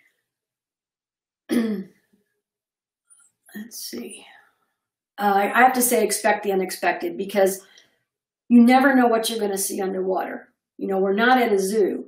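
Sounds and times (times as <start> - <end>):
woman clearing throat: 1.5 - 1.9.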